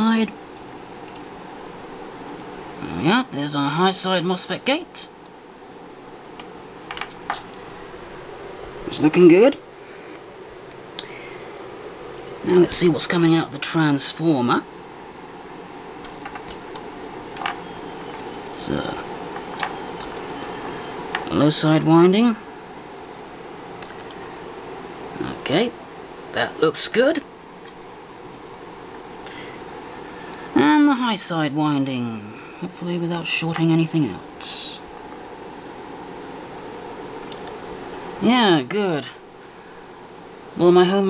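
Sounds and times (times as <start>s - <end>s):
faint high-pitched whine: 0.0s - 41.0s
room noise hiss: 0.0s - 41.0s
steady background hum: 0.0s - 41.0s.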